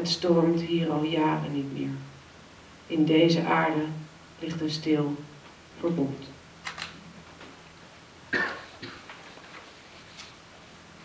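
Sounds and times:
person coughing: 0:08.3 - 0:09.1.

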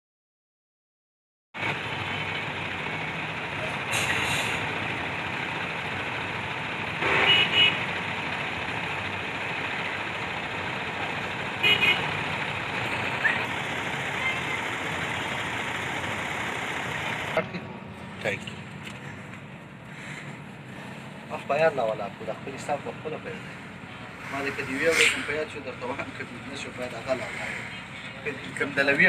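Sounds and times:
vehicle engines running: 0:01.6 - 0:29.0.

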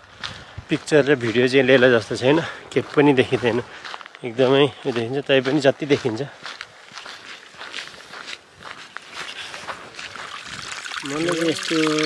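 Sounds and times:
footsteps on a trail: 0:00.0 - 0:12.0.

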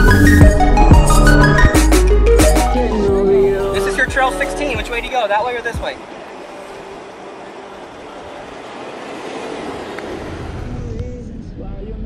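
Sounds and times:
engine and tyre rumble: 0:00.0 - 0:12.0
wind and road noise: 0:00.0 - 0:12.0.

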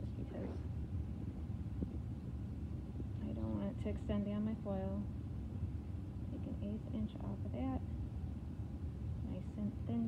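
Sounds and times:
low background rumble: 0:00.0 - 0:10.0.

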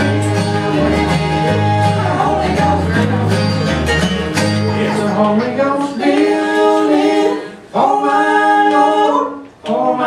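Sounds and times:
men singing in harmony: 0:00.0 - 0:03.8, 0:04.7 - 0:10.0
strummed acoustic guitar: 0:00.0 - 0:07.6.

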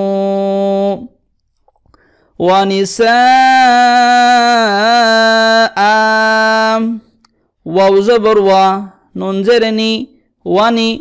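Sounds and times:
man reciting holding long vowel: 0:00.0 - 0:01.2, 0:02.3 - 0:11.0.

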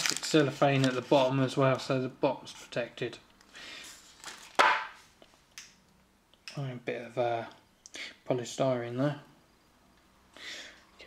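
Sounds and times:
packaging rustling: 0:00.0 - 0:01.3, 0:04.0 - 0:04.9.

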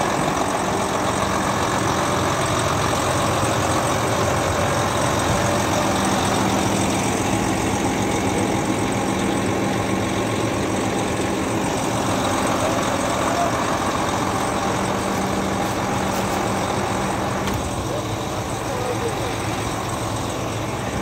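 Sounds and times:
diesel truck engine idling: 0:00.0 - 0:21.0.

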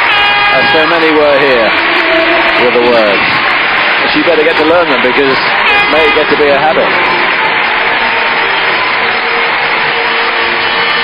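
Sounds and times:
crowd applauding and cheering: 0:00.0 - 0:11.0.

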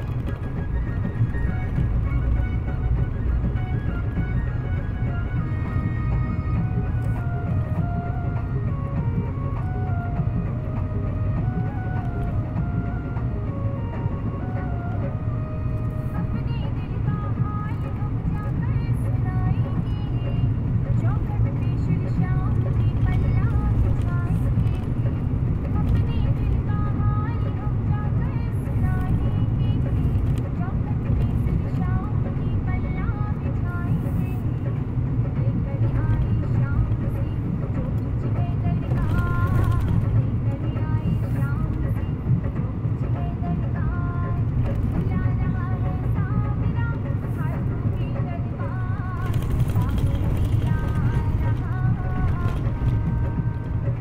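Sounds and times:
engine and road rumble: 0:00.0 - 0:54.0
music playing: 0:00.0 - 0:54.0.

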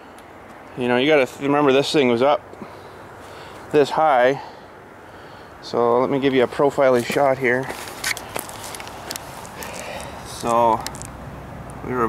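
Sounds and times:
faint outdoor background noise: 0:00.0 - 0:12.0
soft footsteps: 0:06.9 - 0:11.2.

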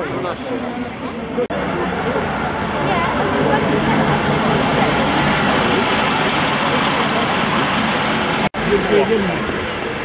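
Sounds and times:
bus diesel engine passing: 0:00.2 - 0:10.0.

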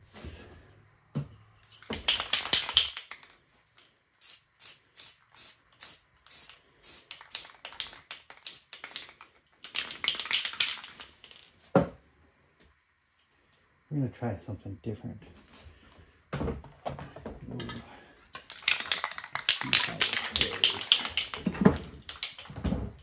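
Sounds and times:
spray can hissing: 0:04.2 - 0:11.1, 0:18.4 - 0:22.5.

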